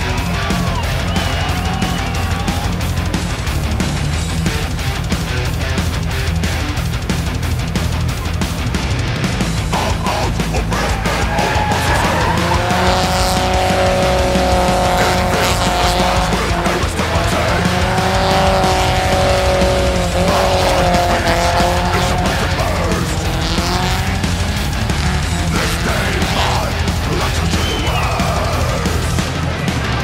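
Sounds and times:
car engine at high revs: 0.0 - 30.0
rock music: 0.0 - 30.0
tyres squealing: 9.7 - 28.8.

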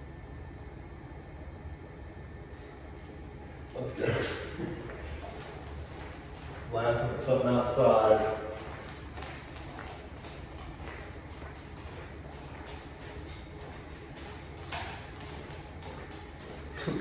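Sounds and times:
steady low hum: 0.0 - 17.0
shoes tapping and shuffling: 3.6 - 17.0
dog claws clicking on floor: 4.2 - 17.0.

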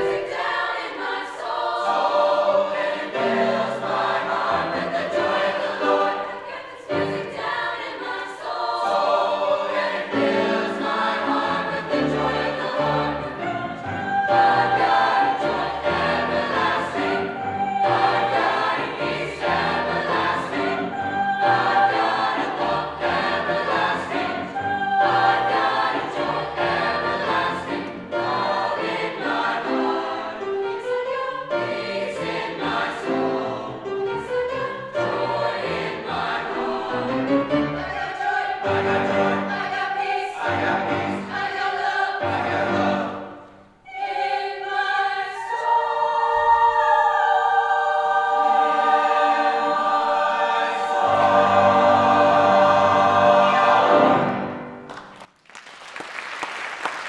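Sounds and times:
mixed choir singing: 0.0 - 54.9
grand piano accompaniment: 0.0 - 55.4.

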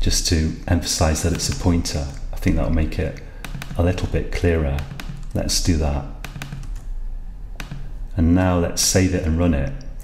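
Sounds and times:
computer keyboard keystrokes: 1.2 - 2.2, 3.4 - 5.4, 6.2 - 6.9, 7.6 - 8.0.

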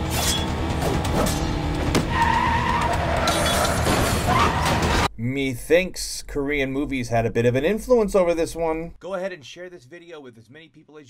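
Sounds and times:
high tyre squeal: 1.2 - 5.1.

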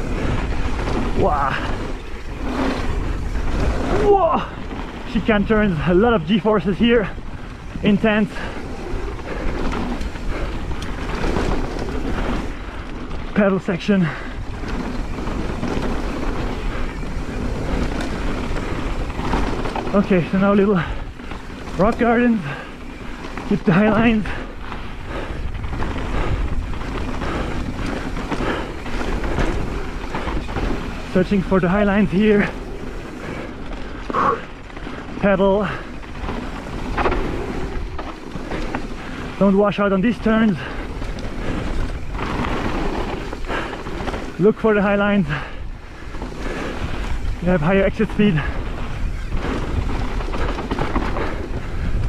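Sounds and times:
tyres rumbling on dirt: 0.0 - 52.0
wind buffeting microphone: 0.0 - 52.0
wind on microphone: 22.4 - 35.2, 45.2 - 52.0.

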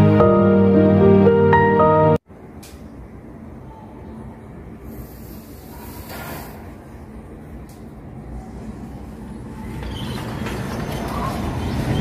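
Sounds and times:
muffled city traffic rumble: 2.2 - 12.0.

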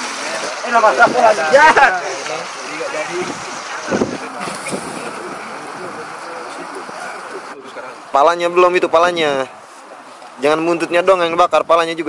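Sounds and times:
steady hiss: 0.0 - 8.0
people chatting: 0.0 - 9.5.

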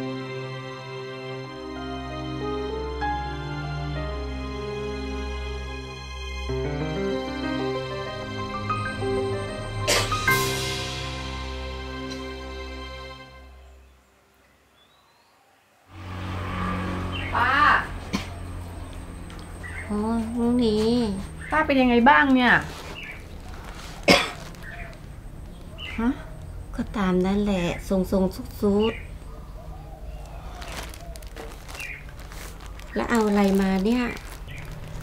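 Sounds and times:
woman coughing: 9.9 - 10.2, 18.1 - 18.4, 24.1 - 24.4
plastic bag crinkling: 22.6 - 26.5, 30.0 - 35.0.

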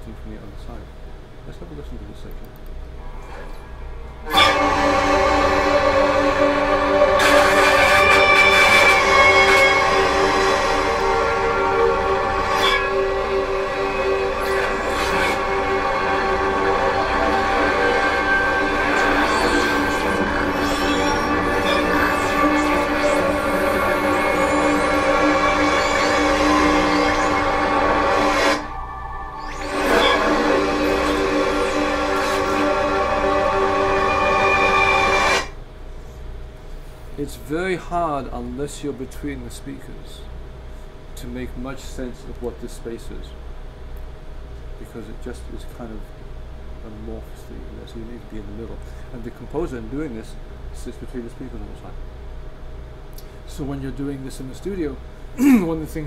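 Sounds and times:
dense layered electronic drone: 2.9 - 35.6.

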